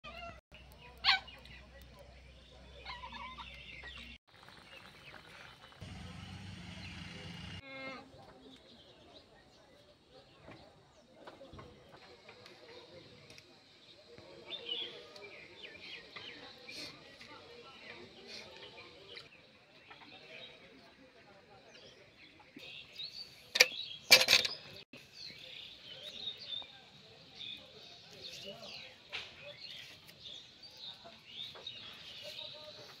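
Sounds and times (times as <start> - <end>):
outdoor background sound: 0.0 - 33.0
animal and bird calls: 0.1 - 5.6
small birds chirping: 0.1 - 33.0
metal kitchenware clanking: 23.6 - 24.7.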